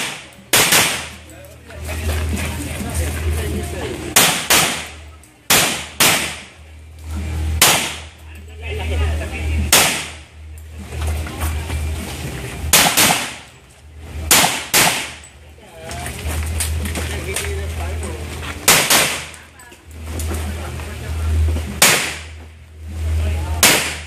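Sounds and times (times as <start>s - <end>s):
handgun shots: 0.0s - 1.2s, 4.2s - 6.6s, 7.6s - 8.1s, 9.7s - 10.2s, 12.7s - 13.5s, 14.3s - 15.2s, 18.6s - 19.4s, 21.8s - 22.4s, 23.6s - 24.0s.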